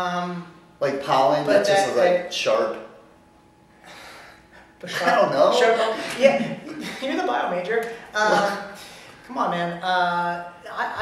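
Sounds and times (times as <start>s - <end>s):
person speaking: 1.2s - 2.4s, 7.8s - 8.8s
person breathing: 3.8s - 4.7s.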